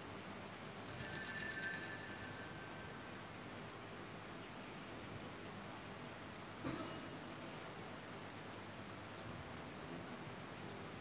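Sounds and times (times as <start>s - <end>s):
altar bells jangling: 0.9s - 2.8s.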